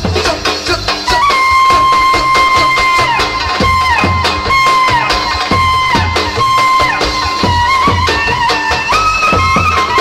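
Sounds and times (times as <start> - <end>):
clarinet dance music: 0.0 - 10.0
steady drum beat: 0.0 - 10.0.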